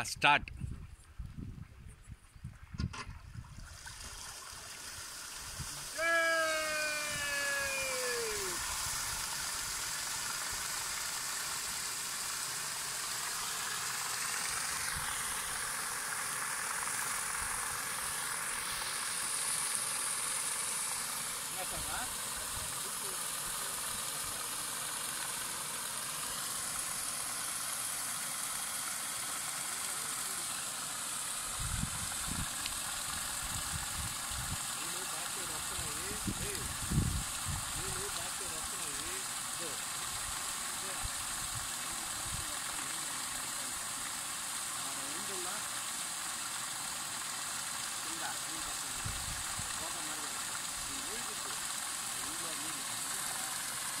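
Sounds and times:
paddle wheel splashing water: 2.9s - 54.0s.

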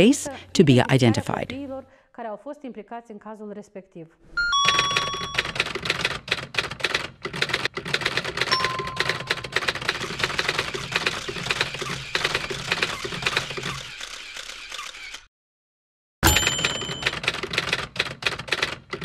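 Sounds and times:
typewriter bell ding: 4.4s - 5.9s, 8.5s - 10.6s, 16.2s - 17.8s
typewriter keystrokes: 4.6s - 13.8s, 16.3s - 19.0s.

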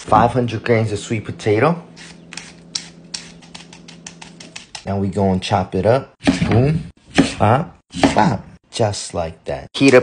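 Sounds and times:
vegetable peeler scraping skin: 2.0s - 4.8s.

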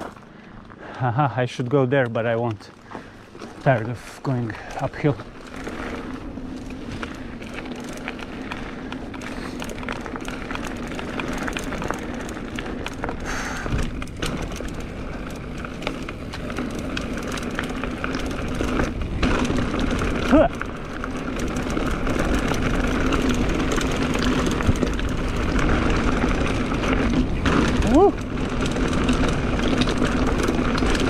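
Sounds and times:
bike knocking and rattling: 0.0s - 31.0s
bike tyres rumbling on gravel: 0.0s - 31.0s.

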